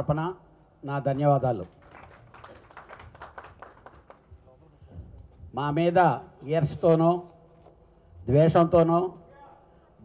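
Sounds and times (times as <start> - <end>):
scattered clapping: 1.8 - 4.3.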